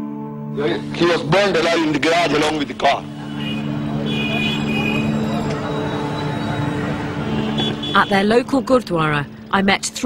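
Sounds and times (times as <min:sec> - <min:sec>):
vehicle engine hum: 0:00.7 - 0:10.0.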